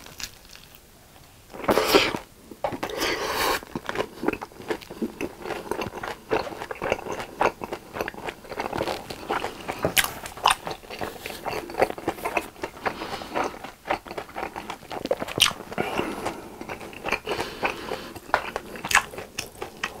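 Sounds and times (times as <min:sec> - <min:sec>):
wet chewing with crunches: 0:01.6 - 0:20.0.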